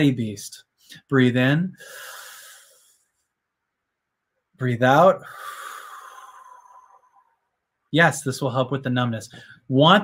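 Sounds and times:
man breathing in: 0:01.8 - 0:03.2, 0:05.2 - 0:07.5, 0:09.3 - 0:09.7.

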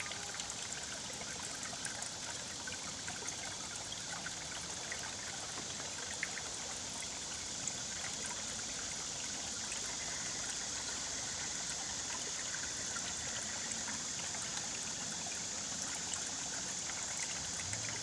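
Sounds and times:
stream trickling among boulders: 0:00.0 - 0:18.0
water splashes and plinks: 0:16.2 - 0:18.0.

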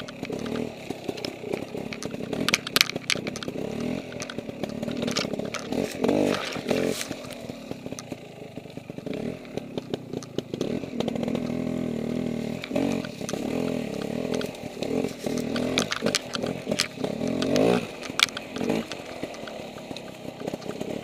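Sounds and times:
dirt bike engine revving unevenly: 0:00.0 - 0:21.0
sharp clicks and knocks: 0:00.0 - 0:21.0.

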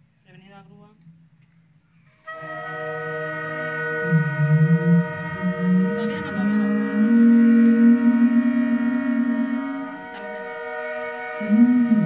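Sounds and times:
orchestra playing: 0:02.3 - 0:12.0.

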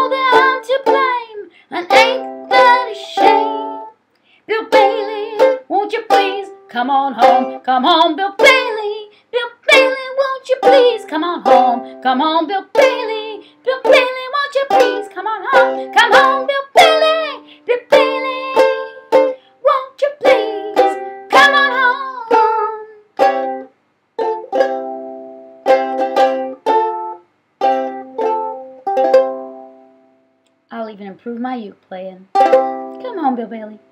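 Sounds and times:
woman singing: 0:00.0 - 0:03.9, 0:04.5 - 0:23.1, 0:33.0 - 0:33.9
ukulele strumming: 0:00.0 - 0:30.2, 0:32.3 - 0:33.9.

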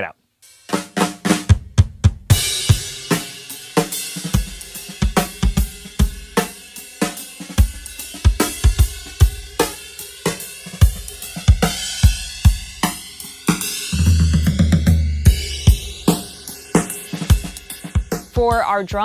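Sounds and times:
flanged drum kit groove: 0:00.0 - 0:19.0.

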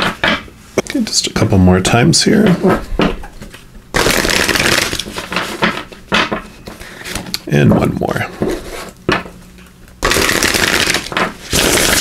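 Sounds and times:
cards being shuffled: 0:03.5 - 0:05.9.

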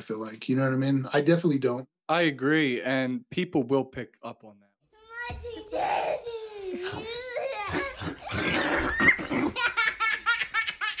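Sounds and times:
person laughing: 0:06.7 - 0:10.2.

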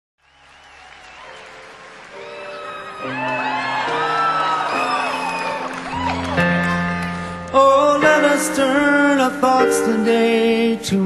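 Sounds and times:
audience applauding: 0:00.2 - 0:07.9.

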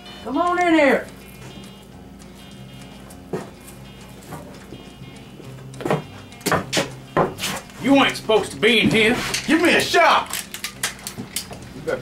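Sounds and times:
soft background music: 0:00.0 - 0:12.0
sharp knocks: 0:05.8 - 0:07.4.

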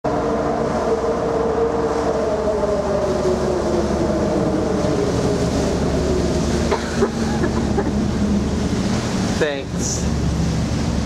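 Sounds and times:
ferry engines droning: 0:00.0 - 0:11.0
water noise: 0:00.0 - 0:11.0
wind: 0:00.0 - 0:11.0.

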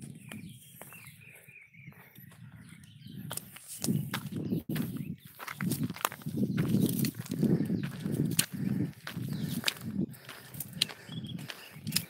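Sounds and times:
footsteps through grass and brush: 0:03.3 - 0:12.0
twigs snapping: 0:09.6 - 0:12.0.

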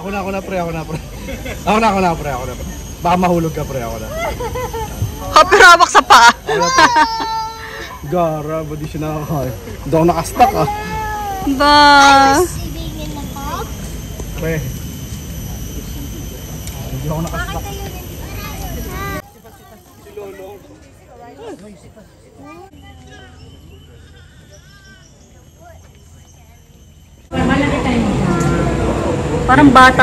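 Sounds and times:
distant voices: 0:00.0 - 0:30.0.

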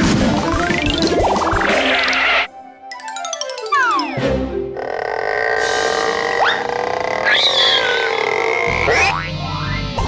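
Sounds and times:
cartoon soundtrack music: 0:00.0 - 0:10.0
warbling effect: 0:00.3 - 0:02.5.

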